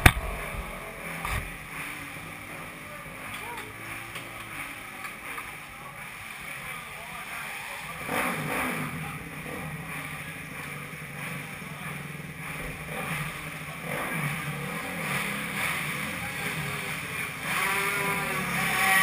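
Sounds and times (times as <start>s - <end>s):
motorcycle engine idling: 0.0s - 18.8s.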